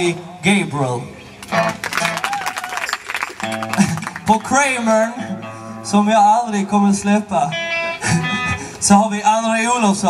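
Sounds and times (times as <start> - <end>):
audience clapping and cheering: 1.4 - 4.4.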